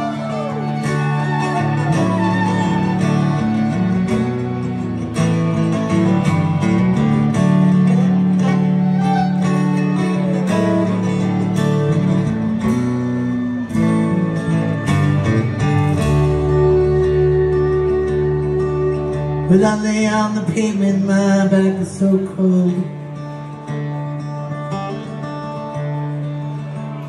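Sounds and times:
fiddle: 0:00.0 - 0:20.0
electric bass: 0:00.0 - 0:20.2
strummed acoustic guitar: 0:00.0 - 0:27.0.

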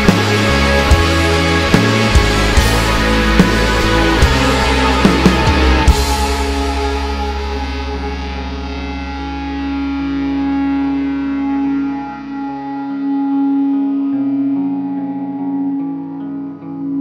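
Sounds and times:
rock electric guitar: 0:00.0 - 0:17.0.

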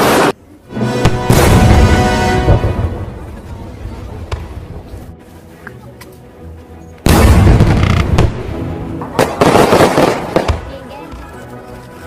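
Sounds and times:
fireworks bangs: 0:01.0 - 0:03.4, 0:07.0 - 0:10.9
fireworks crackle: 0:07.0 - 0:08.4, 0:09.0 - 0:12.0.

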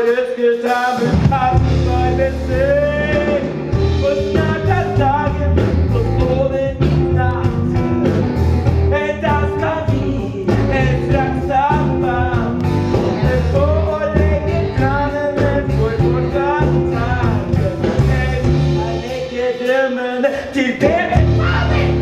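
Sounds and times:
instrumental backing with bass line: 0:00.0 - 0:22.0
voices singing a melody: 0:08.9 - 0:22.0.

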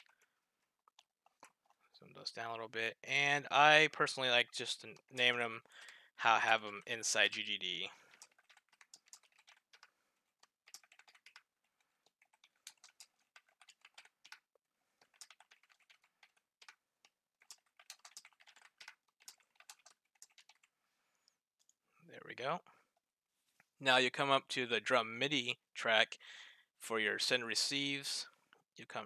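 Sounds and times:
faint keyboard typing: 0:00.0 - 0:02.0, 0:04.0 - 0:21.8.

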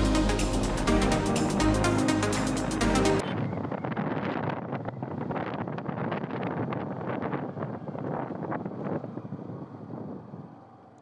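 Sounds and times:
rush of motorcycle ride: 0:00.0 - 0:11.0
wind buffeting microphone: 0:03.2 - 0:11.0.

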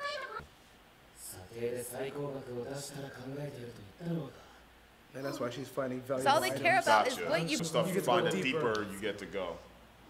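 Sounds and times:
man speaking: 0:05.1 - 0:09.7.

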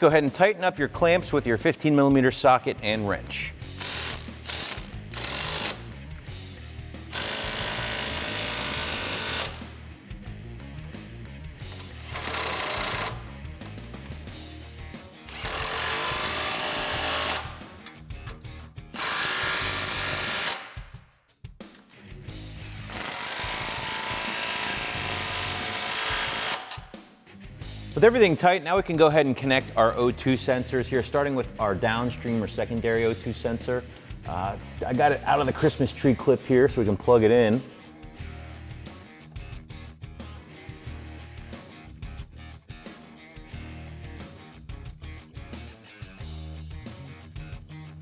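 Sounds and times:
impact wrench hammering: 0:03.8 - 0:05.9, 0:07.1 - 0:09.7, 0:11.7 - 0:13.2, 0:15.3 - 0:18.0, 0:19.0 - 0:20.9, 0:22.6 - 0:27.0.

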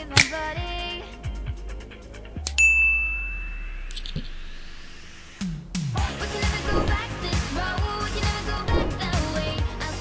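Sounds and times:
slow rising sweep: 0:01.9 - 0:07.3
bright bell-like ding: 0:02.6 - 0:04.2.

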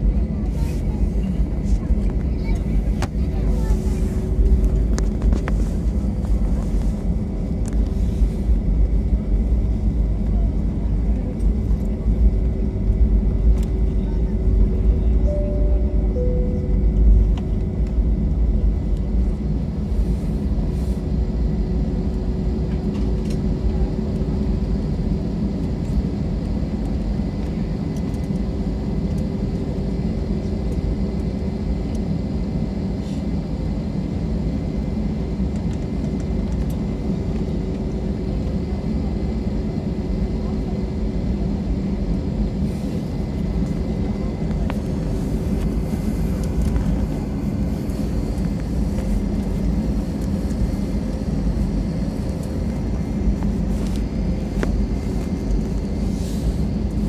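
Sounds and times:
constant hum: 0:00.0 - 0:57.0
jet engines idling: 0:00.0 - 0:57.0.

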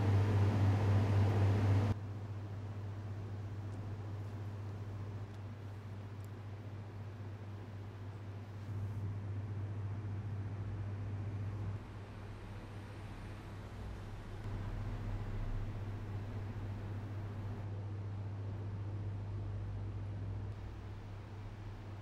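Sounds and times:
air conditioning hum and hiss: 0:00.0 - 0:22.0.

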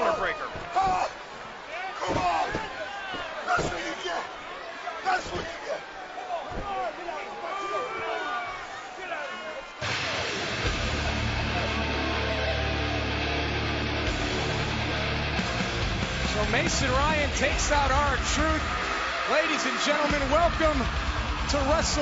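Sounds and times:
arena crowd shouting: 0:00.0 - 0:15.2, 0:16.2 - 0:22.0
thud: 0:02.0 - 0:03.9, 0:05.2 - 0:05.6
loud music with heavy bass: 0:09.8 - 0:17.4.

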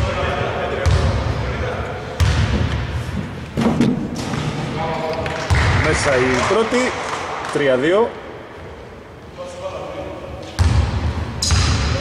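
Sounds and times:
basketball bouncing on indoor court: 0:00.0 - 0:01.6, 0:02.2 - 0:04.6, 0:05.2 - 0:07.5, 0:10.4 - 0:12.0.

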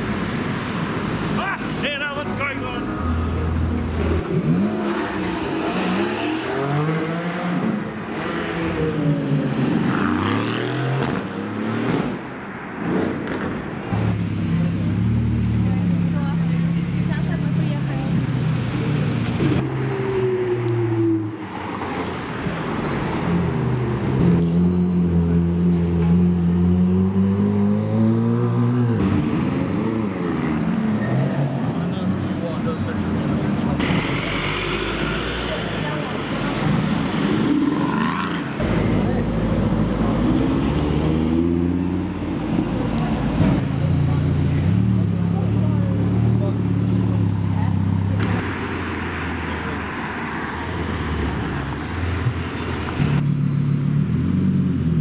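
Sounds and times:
car engines revving: 0:00.0 - 0:55.0.

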